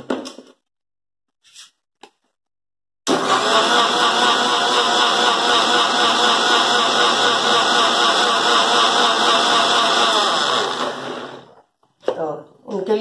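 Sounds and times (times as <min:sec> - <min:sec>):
mixer grinder running: 0:03.1 - 0:11.6.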